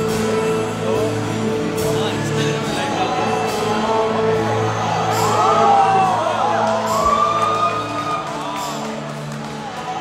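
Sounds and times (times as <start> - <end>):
audience whooping: 5.1 - 10.0.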